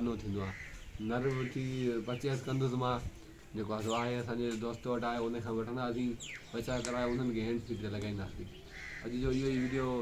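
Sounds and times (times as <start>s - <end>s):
man's voice: 0.0s - 10.0s.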